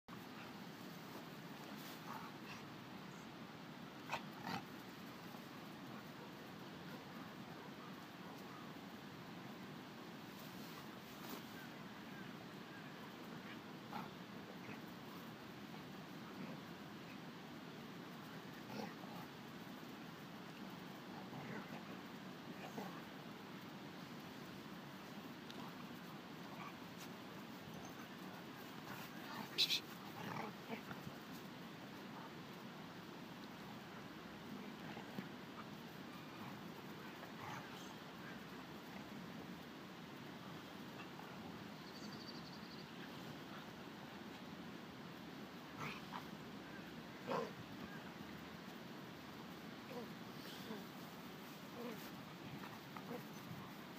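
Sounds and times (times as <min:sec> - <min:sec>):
low background hiss: 0:00.1 - 0:53.9
dogs making sharp noises: 0:03.9 - 0:08.8, 0:10.5 - 0:23.4, 0:24.0 - 0:32.7, 0:33.4 - 0:39.2, 0:45.7 - 0:48.4, 0:49.8 - 0:53.9.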